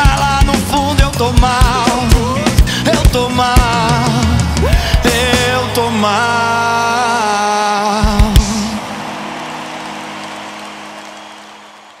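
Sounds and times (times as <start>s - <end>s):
live band playing: 0.0s - 11.9s.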